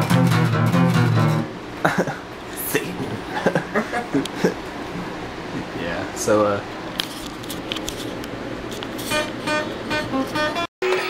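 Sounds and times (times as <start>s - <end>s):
acoustic guitar strumming: 0.0s - 1.6s, 9.0s - 11.0s.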